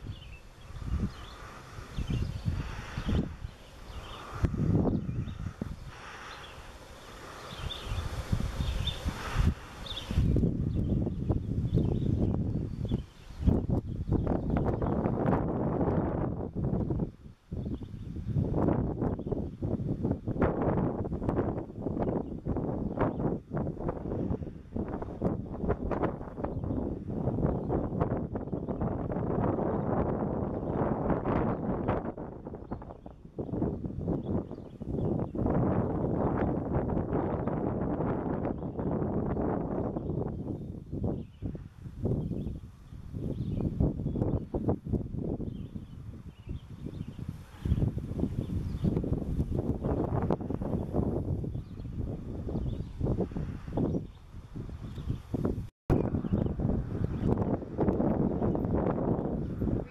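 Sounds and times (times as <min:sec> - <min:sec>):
wind gusting on microphone: 0:00.0 - 0:59.9.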